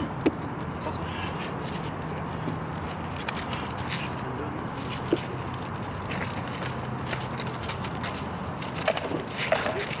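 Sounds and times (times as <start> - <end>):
footsteps on asphalt: 0.0 - 9.9
background noise: 0.0 - 10.0.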